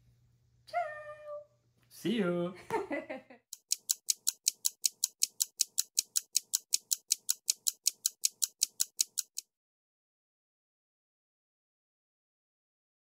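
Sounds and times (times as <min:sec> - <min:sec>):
rapid ticking clicks: 0:03.5 - 0:09.5.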